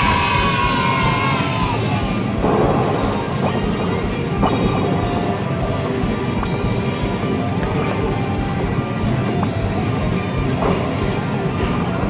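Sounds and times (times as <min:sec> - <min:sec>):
arcade game music: 0:00.0 - 0:12.0
sharp impact hits: 0:02.2 - 0:05.6.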